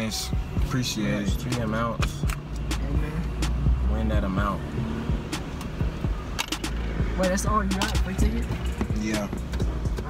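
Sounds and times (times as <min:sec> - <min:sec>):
car cabin rumble: 0:05.1 - 0:10.0.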